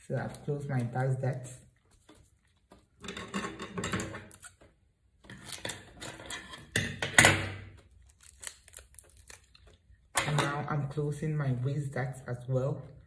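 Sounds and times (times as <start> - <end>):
paper crackle: 7.8 - 9.9.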